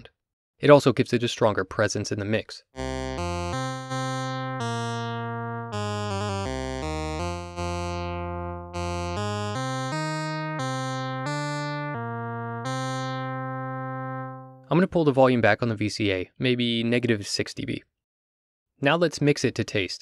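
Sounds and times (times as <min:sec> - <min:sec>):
synth lead melody: 0:02.8 - 0:14.7.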